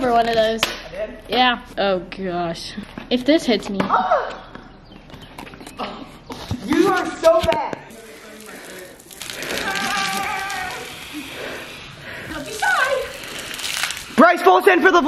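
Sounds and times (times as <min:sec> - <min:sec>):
steady hiss: 0:07.8 - 0:15.0
long drawn-out cry: 0:09.2 - 0:11.8.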